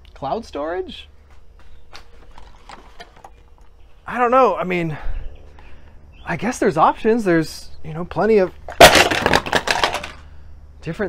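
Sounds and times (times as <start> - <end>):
person moving about: 1.0 - 4.1
hard drives clicking and knocking: 1.2 - 4.1.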